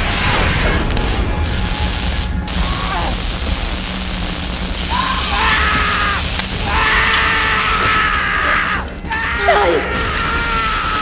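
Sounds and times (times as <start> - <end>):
dramatic film score: 0.0 - 11.0
dense hiss: 0.9 - 8.1
man screaming: 4.9 - 11.0.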